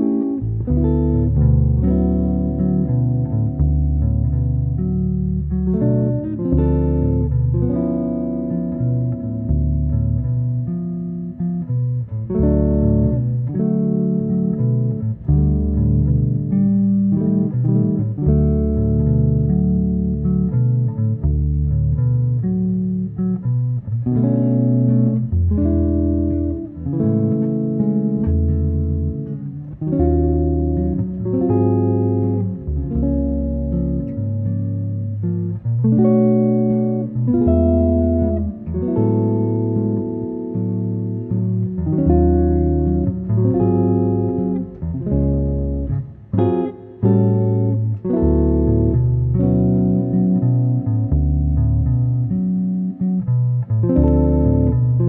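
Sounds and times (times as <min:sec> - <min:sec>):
bass line: 0:00.0 - 0:55.0
jazz guitars playing chords: 0:00.0 - 0:55.0.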